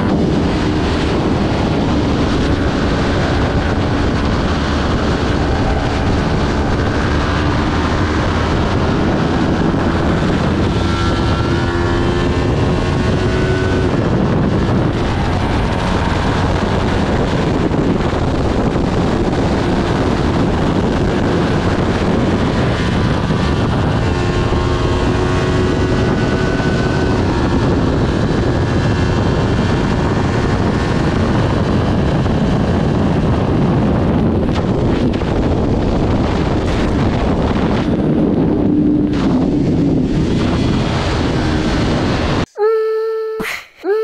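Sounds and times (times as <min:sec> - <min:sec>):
motorcycle engine running hard: 0:00.0 - 0:42.5
heavy wind rush on microphone: 0:00.0 - 0:42.8.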